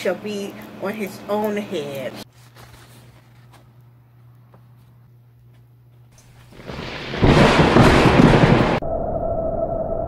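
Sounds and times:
thunder: 6.5 - 10.0
steady whistling tone: 8.8 - 10.0.

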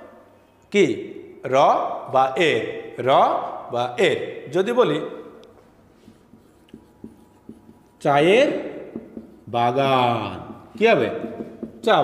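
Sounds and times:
marker pen writing on whiteboard: 5.5 - 12.0.

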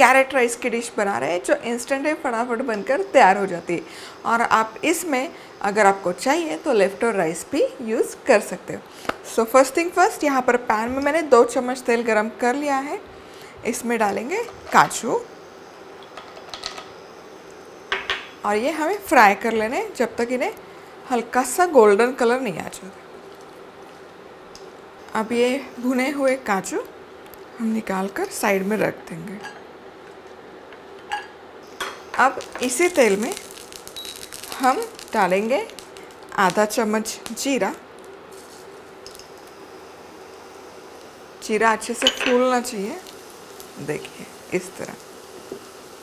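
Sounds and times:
seeds sizzling in hot oil: 0.0 - 28.7, 31.6 - 46.0
nuts dropping into hot oil: 16.0 - 16.9, 31.8 - 38.1, 39.0 - 39.5
oil sizzling: 23.1 - 28.6, 30.8 - 46.0.

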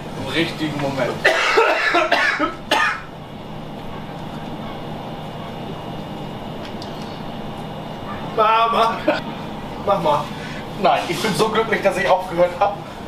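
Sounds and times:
low room hum: 0.0 - 13.0
man coughing hard: 1.2 - 3.1, 8.8 - 9.2.

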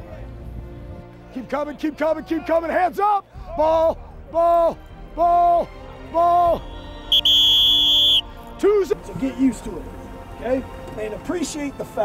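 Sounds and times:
long high-pitched whistle blast: 6.7 - 8.3.

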